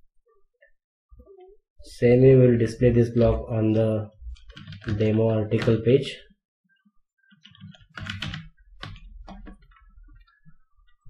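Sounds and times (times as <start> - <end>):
computer keyboard typing: 4.3 - 5.8, 7.3 - 11.0.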